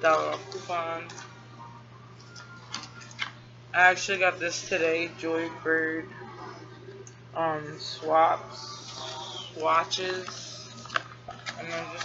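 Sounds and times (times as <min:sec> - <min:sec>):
low electrical hum: 0:00.0 - 0:12.0
clicks handling card packaging: 0:10.0 - 0:12.0.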